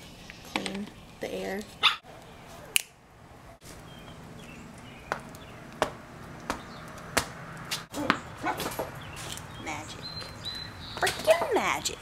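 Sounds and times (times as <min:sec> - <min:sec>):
tennis ball bouncing on pavement: 0:04.4 - 0:11.6.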